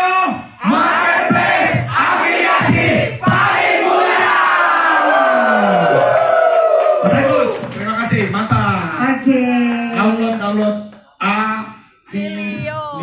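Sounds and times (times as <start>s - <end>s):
crowd shouting in unison: 0.6s - 7.2s.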